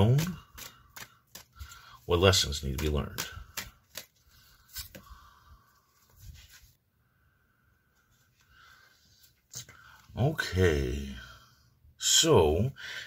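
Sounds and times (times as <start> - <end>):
cards rustling: 0.0 - 5.3.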